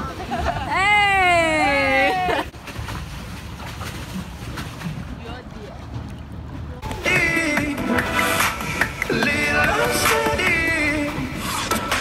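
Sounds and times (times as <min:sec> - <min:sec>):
pop music with singing: 0:06.9 - 0:12.0.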